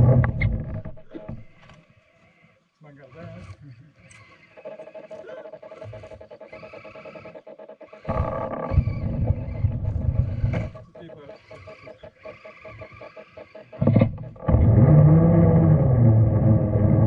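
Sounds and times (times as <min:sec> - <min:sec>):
electric motor whining and growling: 0:00.0 - 0:17.0.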